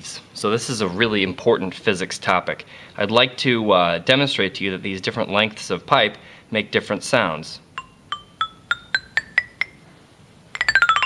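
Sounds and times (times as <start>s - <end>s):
metal tube chimes ringing: 7.8s - 9.9s, 10.5s - 11.0s.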